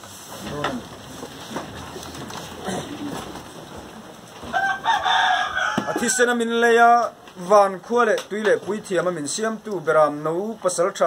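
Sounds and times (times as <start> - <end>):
rooster crowing: 4.4 - 6.4.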